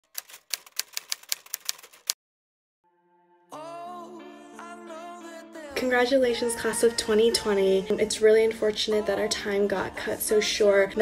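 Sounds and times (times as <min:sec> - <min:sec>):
typewriter keys clacking: 0:00.0 - 0:02.2.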